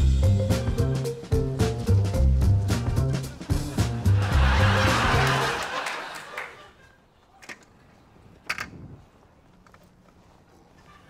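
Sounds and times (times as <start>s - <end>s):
music: 0.0s - 6.0s.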